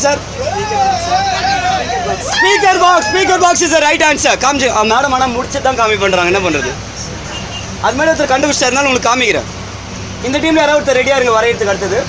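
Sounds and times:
bus engine rumble: 0:00.0 - 0:12.0.

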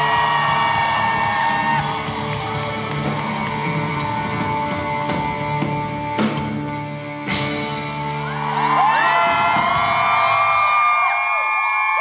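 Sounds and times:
crowd cheering and screaming: 0:00.0 - 0:06.2, 0:07.3 - 0:12.0.

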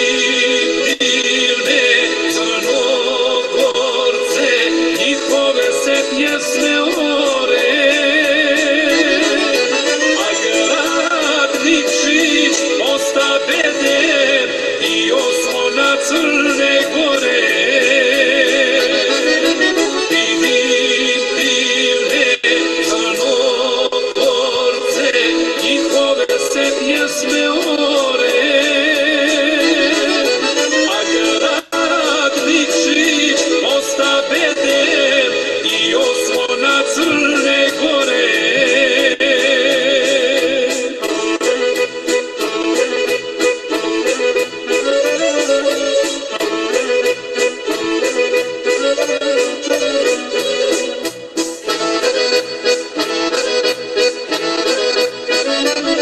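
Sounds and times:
man singing folk song: 0:00.0 - 0:41.6
accordion: 0:00.0 - 0:56.0.

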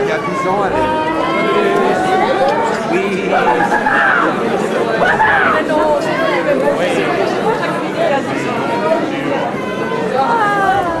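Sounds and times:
man speaking animatedly: 0:02.9 - 0:04.5.

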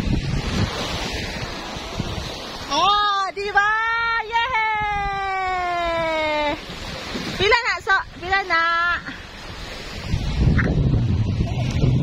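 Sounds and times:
wind noise on microphone: 0:00.0 - 0:12.0.

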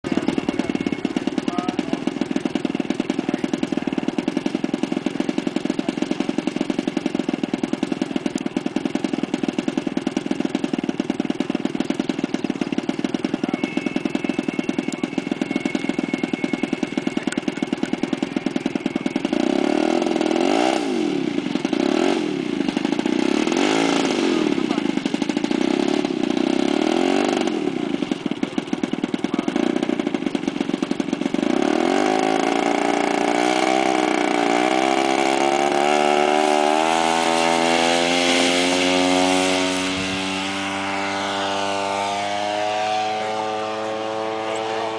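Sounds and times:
model airplane engine revving: 0:00.1 - 0:44.9.

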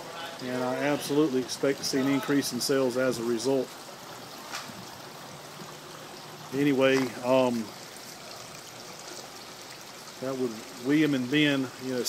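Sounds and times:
water trickling in fountains: 0:00.0 - 0:12.0.

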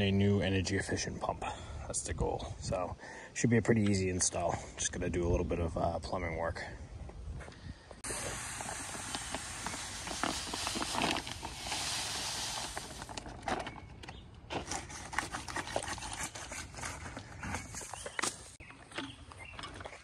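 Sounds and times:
sand pouring from a bag: 0:08.0 - 0:13.4.

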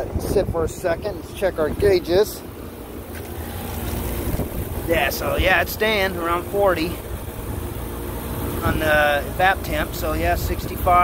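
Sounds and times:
wind on microphone: 0:00.0 - 0:01.3, 0:04.0 - 0:04.9
air conditioning unit humming: 0:00.0 - 0:11.0.

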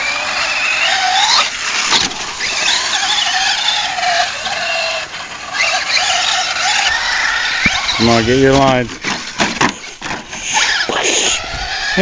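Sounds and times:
radio-controlled car driving: 0:00.0 - 0:12.0.

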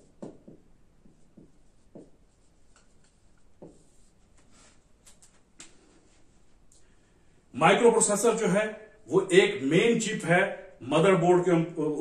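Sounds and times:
pen strokes on paper: 0:01.0 - 0:04.9.

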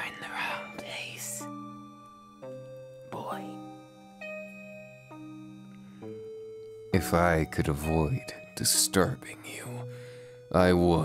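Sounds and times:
soft held chords: 0:00.0 - 0:11.0.

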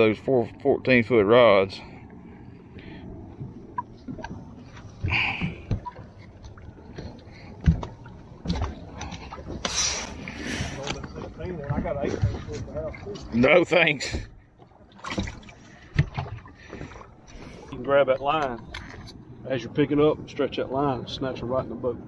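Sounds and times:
knocks and bumps on boat deck: 0:11.5 - 0:12.9, 0:13.9 - 0:14.4.

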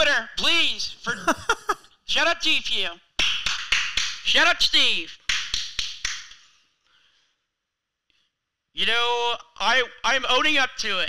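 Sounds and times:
sharp hand claps: 0:03.2 - 0:04.4, 0:05.2 - 0:06.5.

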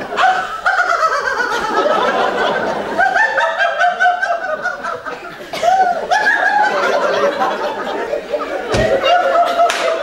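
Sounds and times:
woman laughing: 0:00.2 - 0:10.0.

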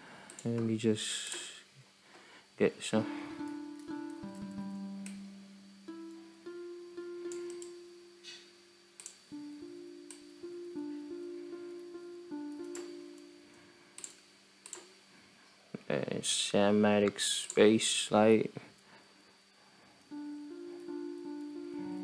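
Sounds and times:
harp playing plucked notes: 0:03.0 - 0:08.7, 0:09.3 - 0:13.8, 0:20.1 - 0:22.0.

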